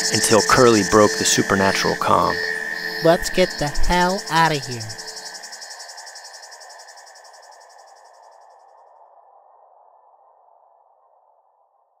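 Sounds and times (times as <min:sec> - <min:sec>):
insects chirping trill: 0:00.0 - 0:10.5.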